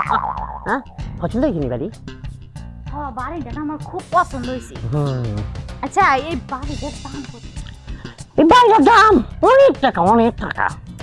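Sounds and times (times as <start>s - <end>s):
background music with regular beat: 0.0s - 11.0s
person speaking: 4.8s - 5.6s.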